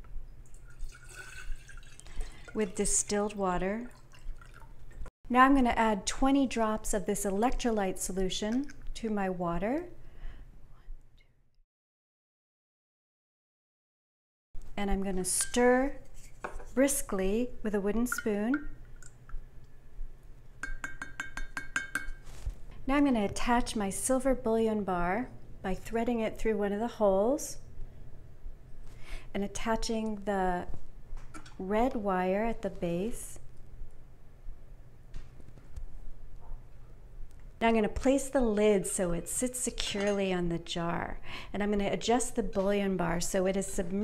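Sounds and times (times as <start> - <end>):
water pouring into glass jar: 0.4 - 5.1
water splashing: 0.6 - 5.1
wooden spoon clinking glass jar: 20.6 - 22.3.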